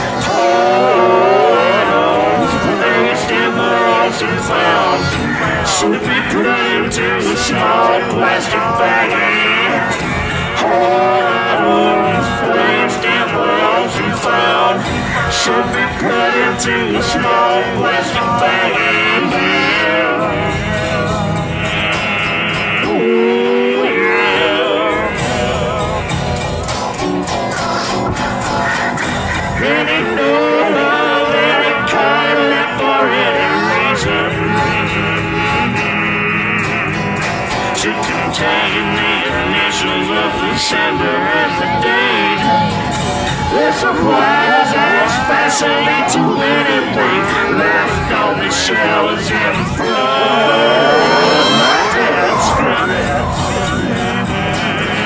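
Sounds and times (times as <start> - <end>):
guitar and vocal song: 0.0 - 55.0.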